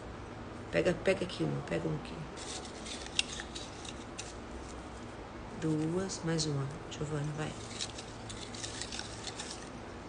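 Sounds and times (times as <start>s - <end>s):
paper slips rustling: 2.4s - 4.4s, 7.5s - 9.7s.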